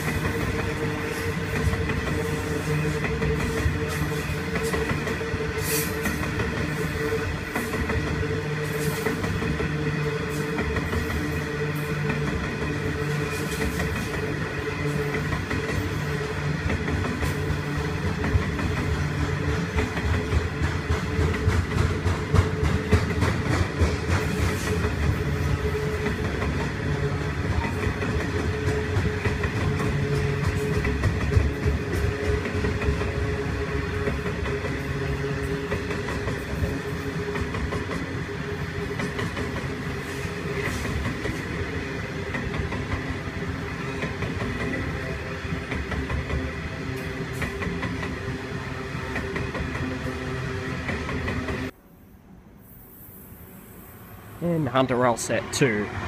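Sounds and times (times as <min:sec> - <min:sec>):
wheels clacking over rails: 0:00.0 - 0:51.7
train rumbling past: 0:00.0 - 0:56.0.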